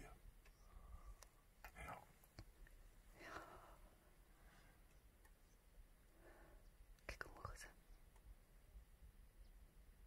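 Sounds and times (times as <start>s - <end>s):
faint whispering: 0.0s - 2.2s, 3.1s - 4.0s, 5.5s - 8.1s.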